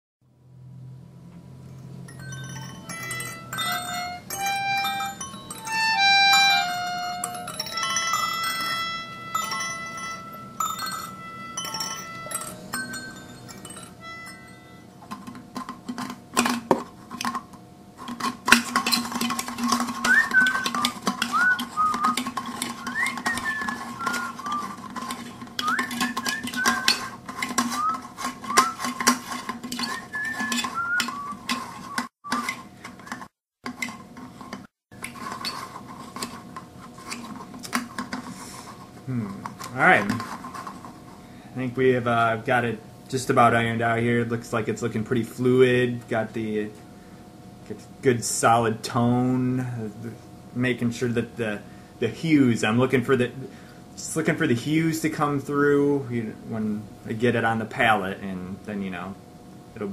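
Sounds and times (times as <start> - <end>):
tune of clear separate notes: 2.2 - 15.0
stick stirring paint in metal cans: 15.0 - 41.2.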